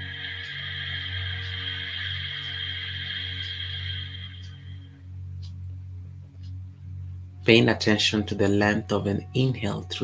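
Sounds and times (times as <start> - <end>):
slow breathy exhale through nose: 0.0 - 4.9
ambient synth music with drone: 0.0 - 10.0.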